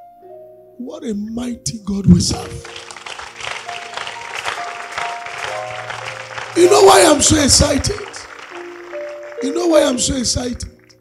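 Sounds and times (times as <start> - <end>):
congregation clapping and cheering: 2.2 - 11.0.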